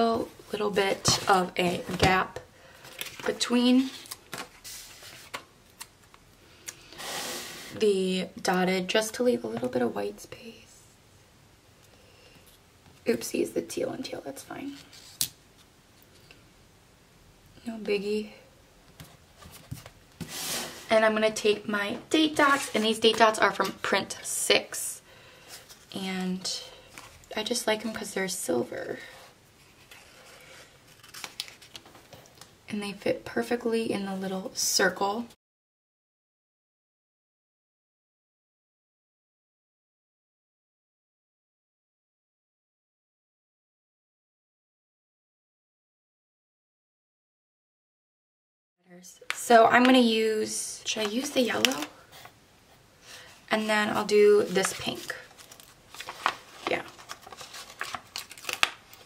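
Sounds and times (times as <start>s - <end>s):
paper rustling: 2.8s - 6.0s, 29.6s - 32.3s, 50.9s - 52.3s, 53.1s - 59.0s.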